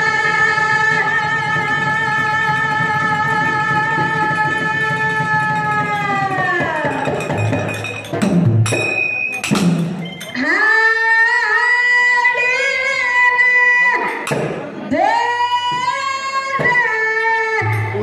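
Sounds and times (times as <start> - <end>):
woman singing into microphone: 0.0 - 7.0, 10.4 - 14.2, 14.9 - 18.0
percussion strikes: 0.0 - 10.6, 12.3 - 18.0.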